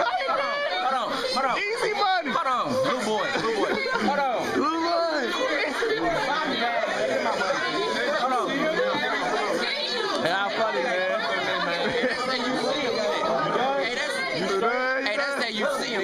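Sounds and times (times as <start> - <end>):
people chattering excitedly: 0.0 - 16.0.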